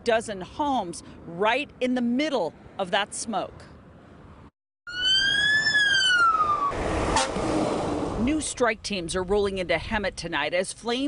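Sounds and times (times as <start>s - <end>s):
fire engine siren wailing: 4.9s - 8.2s
truck going past: 5.2s - 8.5s.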